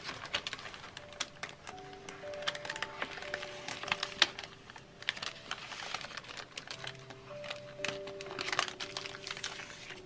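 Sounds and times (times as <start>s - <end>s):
paper bag clicks and rustles: 0.0s - 10.0s.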